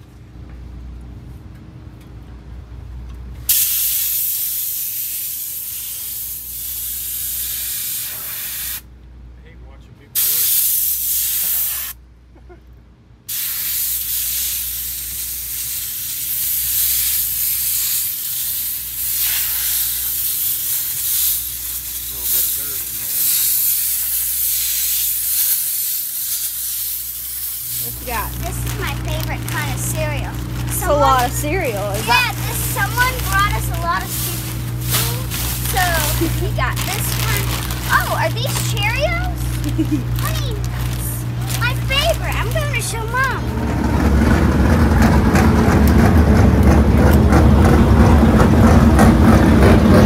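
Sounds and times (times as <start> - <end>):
pressurized spray hissing: 3.5 - 8.8, 10.2 - 12.0, 13.3 - 30.2, 31.4 - 43.3.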